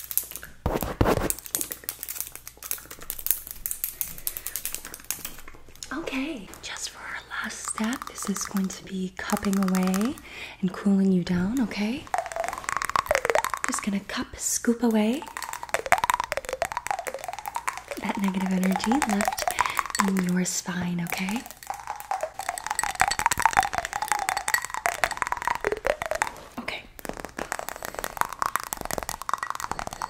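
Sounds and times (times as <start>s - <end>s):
cupped hands patting and popping: 0.0s - 30.0s
faint wavering tone: 21.3s - 26.3s.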